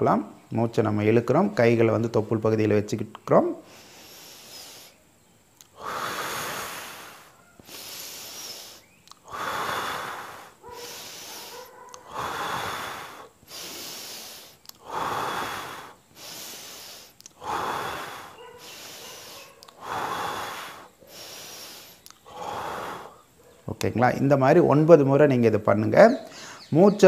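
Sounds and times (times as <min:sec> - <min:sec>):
man breathing deeply: 0:03.6 - 0:23.5, 0:26.3 - 0:26.7.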